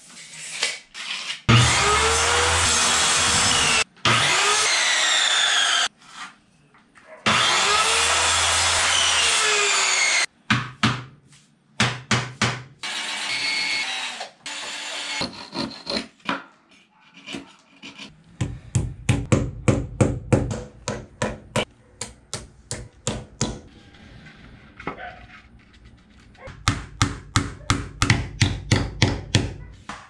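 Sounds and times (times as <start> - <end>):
power saw cutting plywood: 1.5 - 5.9, 7.3 - 10.3.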